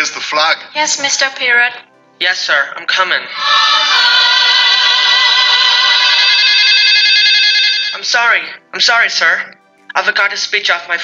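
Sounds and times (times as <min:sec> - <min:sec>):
mobile phone ringtone: 0:05.7 - 0:08.6.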